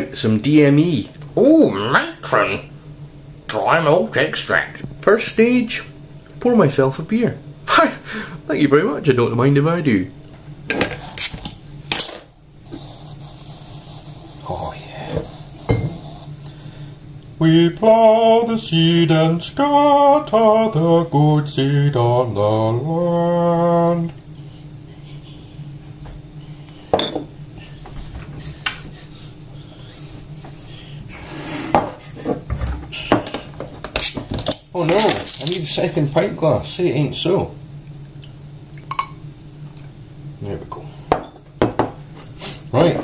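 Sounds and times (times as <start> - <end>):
glass bottle and glass clinking: 15.7 - 16.0, 27.0 - 27.3, 34.4 - 35.7.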